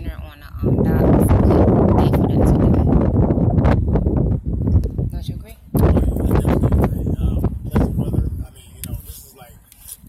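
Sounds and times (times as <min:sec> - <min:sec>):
wind on microphone: 0:00.0 - 0:10.0.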